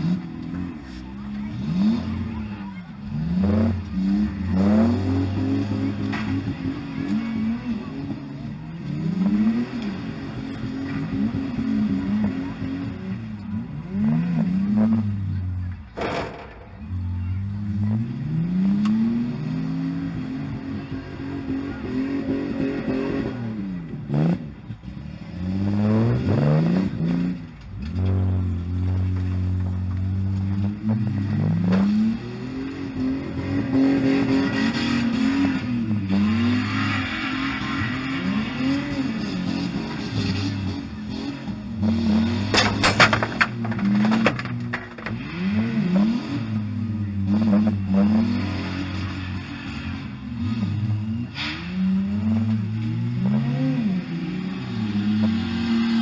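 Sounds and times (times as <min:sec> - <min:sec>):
car engines revving: 0:00.0 - 0:56.0.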